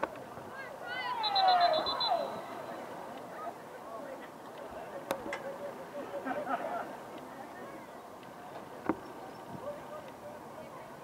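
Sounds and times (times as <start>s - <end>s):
people shouting: 0.6s - 2.5s.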